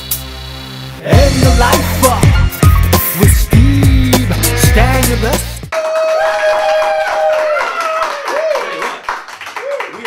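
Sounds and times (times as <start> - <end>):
small audience clapping: 5.7 - 10.0.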